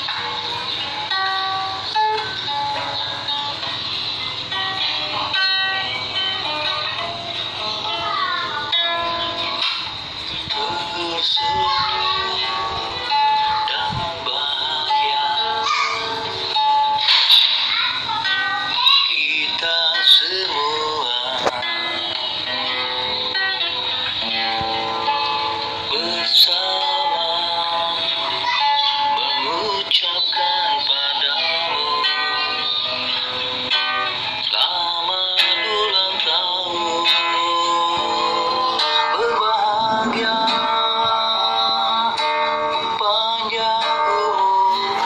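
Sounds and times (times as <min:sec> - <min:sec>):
guitar accompaniment: 0:00.0 - 0:45.0
man singing: 0:10.4 - 0:15.7, 0:18.7 - 0:22.2, 0:25.8 - 0:32.5, 0:34.4 - 0:45.0.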